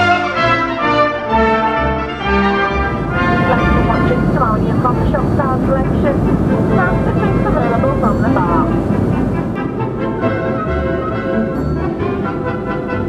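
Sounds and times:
aircraft engine drone: 0.0 - 13.0
orchestral brass music: 0.0 - 13.0
person speaking: 3.1 - 8.8.

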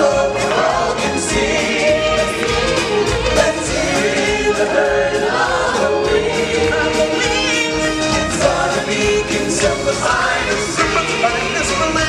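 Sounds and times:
choir singing: 0.0 - 12.0
musical accompaniment: 0.0 - 12.0.

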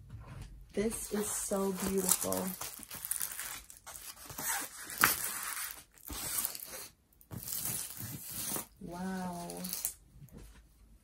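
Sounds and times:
canvas and plastic film crinkling: 0.8 - 9.9.

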